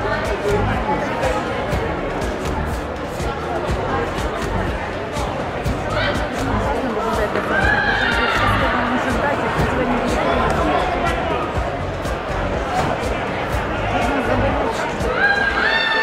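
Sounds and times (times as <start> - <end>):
crowd chatter: 0.0 - 16.0
high drawn-out shouts: 7.4 - 8.7, 15.0 - 16.0.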